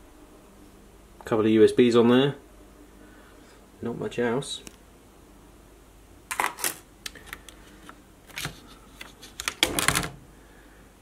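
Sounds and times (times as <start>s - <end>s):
plastic laptop parts clattering: 6.3s - 10.2s.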